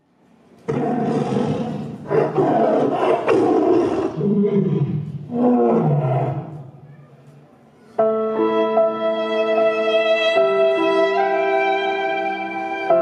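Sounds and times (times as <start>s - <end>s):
recorded animal roars: 0.7s - 6.6s.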